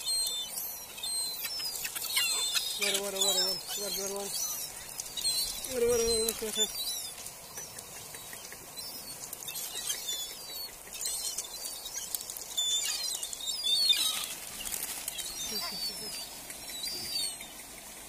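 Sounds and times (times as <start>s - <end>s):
gulls squealing: 1.0s - 11.4s
wings flapping: 13.9s - 18.0s.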